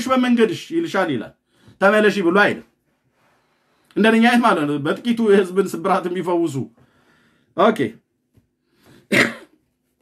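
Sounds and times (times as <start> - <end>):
man talking: 0.0 - 2.8, 3.9 - 6.8, 7.6 - 8.0
man clearing his throat: 9.0 - 9.6.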